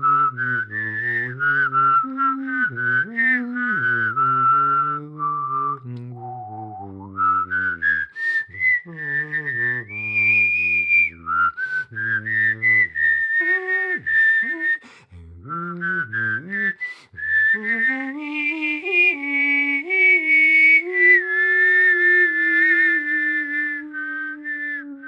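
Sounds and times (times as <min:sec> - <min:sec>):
person whistling a melody: 0:00.0 - 0:25.0
low voiced note: 0:05.8 - 0:07.7.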